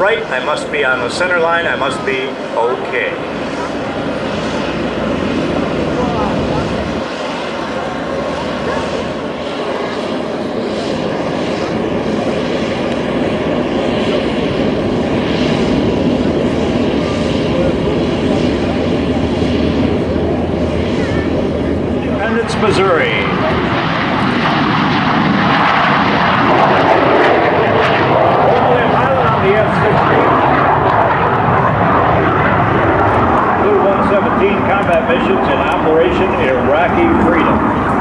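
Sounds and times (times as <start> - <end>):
military aircraft engines: 0.0 - 38.0.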